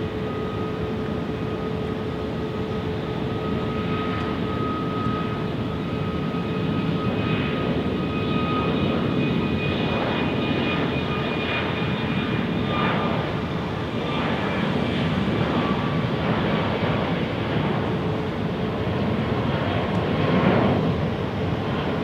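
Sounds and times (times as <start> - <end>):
high fan whine: 0.0 - 7.0
jet engines rushing: 0.0 - 22.0.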